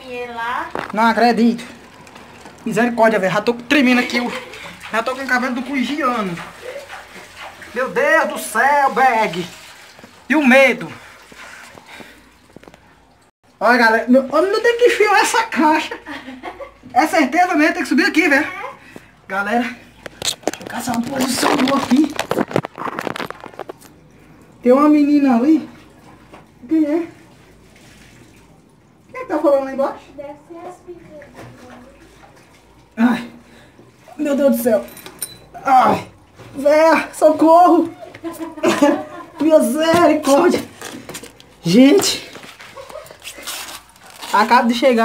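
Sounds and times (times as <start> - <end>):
faint running water: 0.0 - 45.0.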